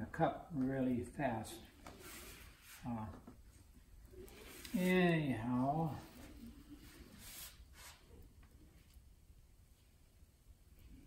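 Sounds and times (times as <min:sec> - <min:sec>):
wooden stick spreading wet resin: 0:04.2 - 0:09.0.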